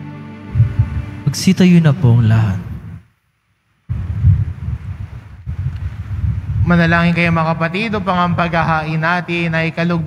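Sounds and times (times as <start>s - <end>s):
low uneven rumble: 0.5s - 3.1s, 3.8s - 10.0s.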